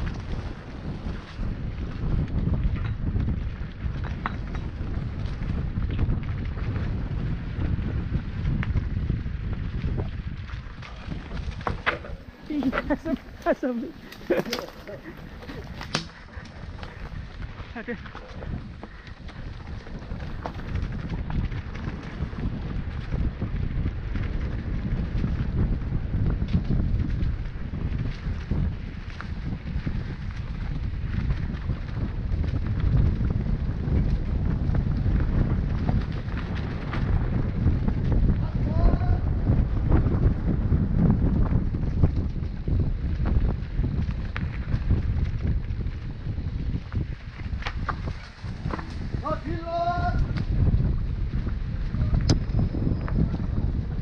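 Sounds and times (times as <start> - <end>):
bike rattles and knocks: 0.0 - 54.0
wind buffeting microphone: 0.0 - 54.0.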